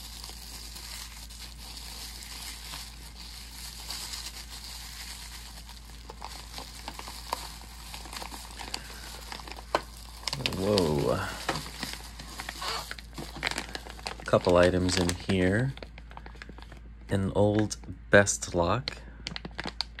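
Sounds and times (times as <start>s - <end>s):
tissue paper crinkling: 0.0s - 16.8s, 19.3s - 20.0s.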